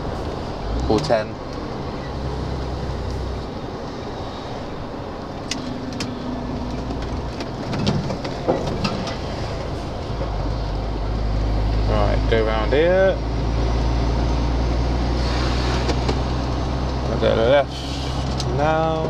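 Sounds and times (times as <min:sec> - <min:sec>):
diesel engine running: 0:00.0 - 0:19.0
road noise: 0:00.0 - 0:19.0.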